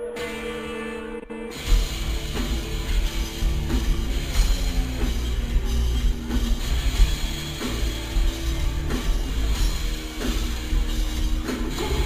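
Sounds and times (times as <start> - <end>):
heavy metal band playing live: 0.0 - 12.0
low bass notes: 1.5 - 12.0.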